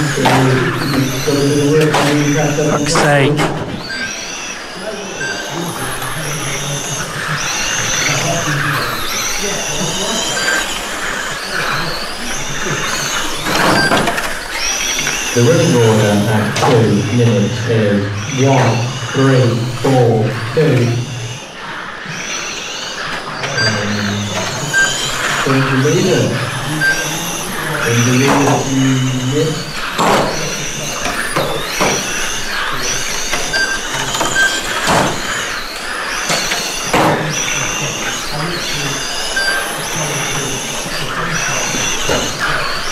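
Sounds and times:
rc car electric motors whining: 0.0 - 42.9.

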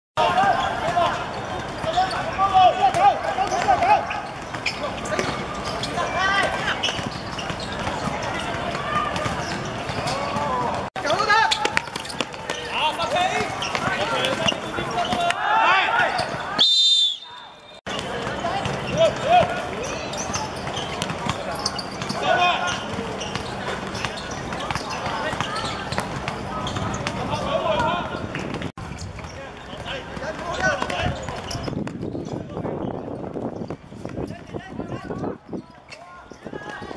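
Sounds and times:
footballers shouting: 0.2 - 7.0, 7.6 - 28.4
high whistle-like tone: 16.6 - 17.8.

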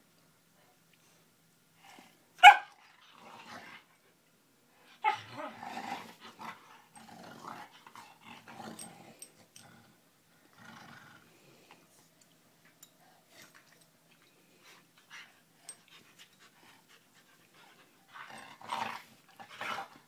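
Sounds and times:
dog barking: 2.4 - 2.8
dogs growling: 5.1 - 11.7, 18.1 - 20.0.

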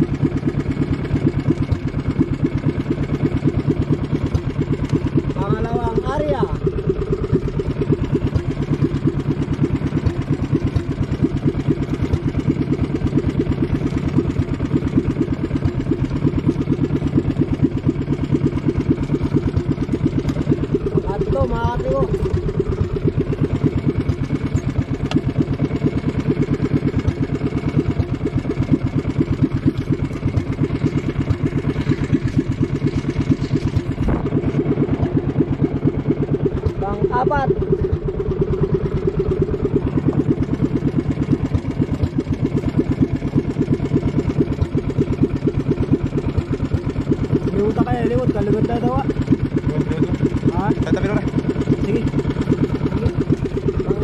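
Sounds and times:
boat engine chugging: 0.0 - 54.0.

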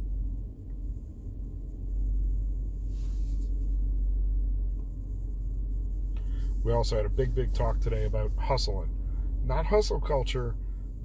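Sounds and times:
low rumble inside vehicle cabin: 0.0 - 11.0.

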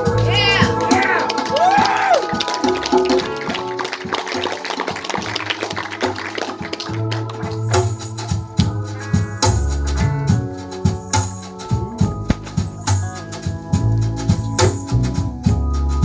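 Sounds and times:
band rhythm: 0.0 - 16.0.

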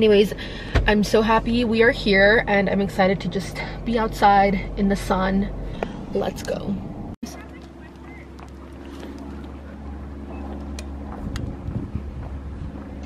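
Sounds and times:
wind buffeting microphone: 5.5 - 13.0.

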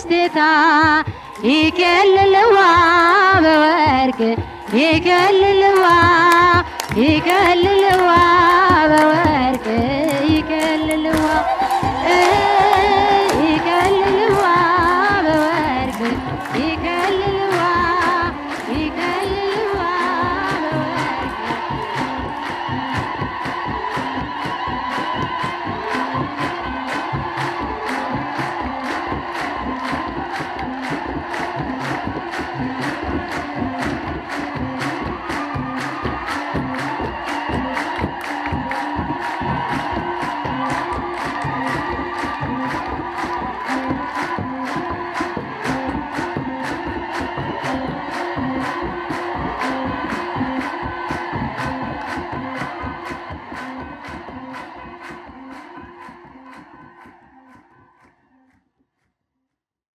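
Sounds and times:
hand drums beating: 0.0 - 57.7
hand clapping: 0.0 - 58.6.

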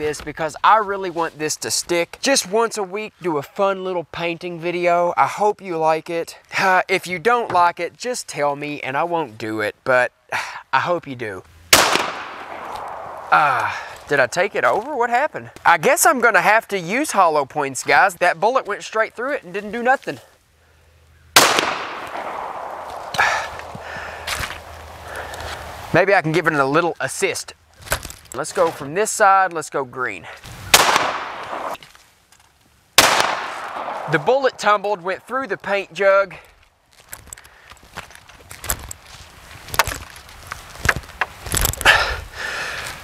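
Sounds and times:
pistol shot: 11.7 - 13.5, 21.4 - 23.8, 30.7 - 31.8, 33.0 - 34.3
handling noise: 11.8 - 14.9, 21.4 - 25.9, 36.5 - 41.9
footsteps on grass: 11.8 - 15.7, 21.4 - 26.5, 33.1 - 35.9, 36.6 - 41.6.

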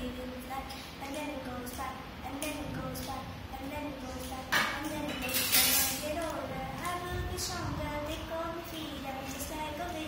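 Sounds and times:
girl singing unaccompanied: 0.0 - 10.0.

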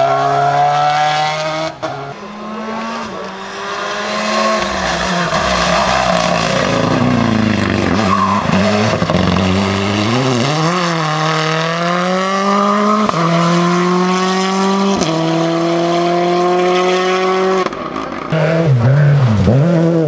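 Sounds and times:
rally car engine revving: 0.0 - 20.0.

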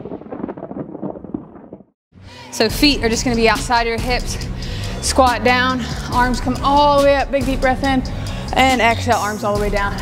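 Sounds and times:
low rumble with crackles: 0.0 - 2.0.

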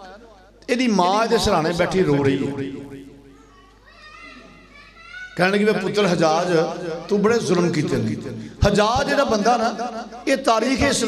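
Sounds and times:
faint high-pitched voices: 3.3 - 7.8.

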